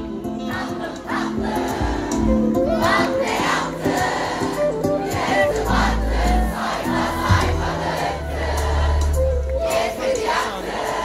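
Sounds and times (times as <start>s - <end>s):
crowd singing and shouting: 0.0s - 11.0s
live pop band: 0.0s - 11.0s.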